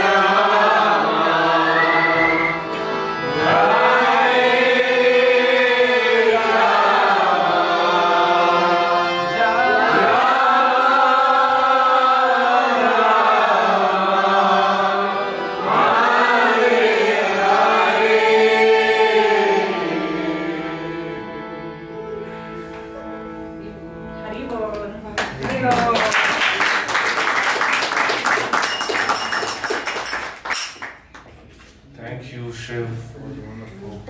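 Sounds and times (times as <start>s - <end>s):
group chanting a devotional mantra: 0.0s - 22.2s.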